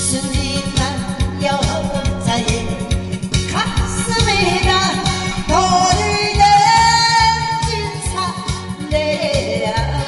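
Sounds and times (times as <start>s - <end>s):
backing track with steady beat: 0.0s - 10.0s
woman singing into microphone: 0.0s - 10.0s.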